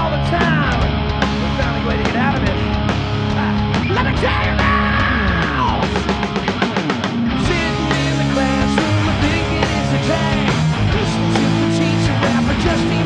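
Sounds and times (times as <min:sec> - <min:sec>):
bass guitar: 0:00.0 - 0:13.0
drum kit: 0:00.0 - 0:13.0
electric guitar bending notes: 0:00.0 - 0:13.0.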